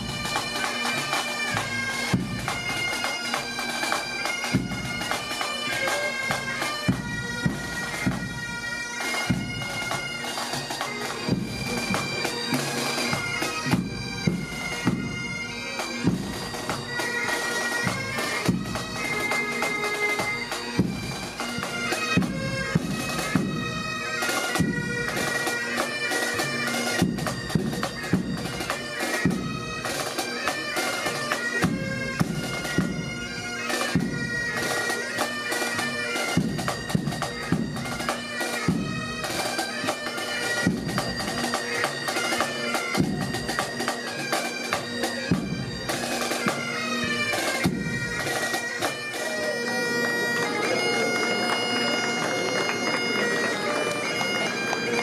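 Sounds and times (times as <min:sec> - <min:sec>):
bagpipes playing a melody: 0:00.0 - 0:55.0.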